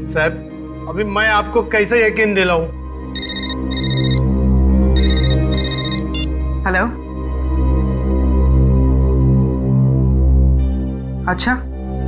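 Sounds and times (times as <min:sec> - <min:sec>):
mobile phone ringtone trilling: 0:03.2 - 0:04.2, 0:05.0 - 0:06.3.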